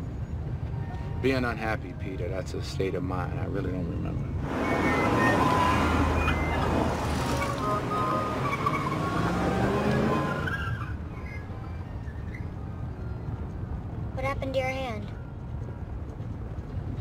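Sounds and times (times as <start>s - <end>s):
street noises: 0.0s - 17.0s
cars passing: 4.3s - 17.0s.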